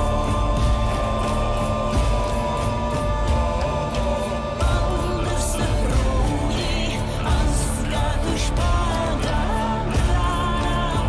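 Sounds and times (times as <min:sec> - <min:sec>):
held tones over pulsing beat: 0:00.0 - 0:11.0.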